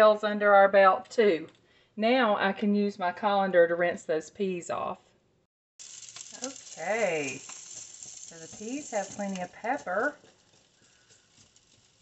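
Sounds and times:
metal spoon stirring in pot: 5.8 - 12.0.

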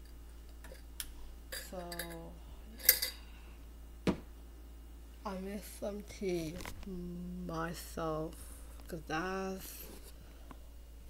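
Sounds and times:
woman's voice: 1.6 - 2.4, 5.2 - 10.0.

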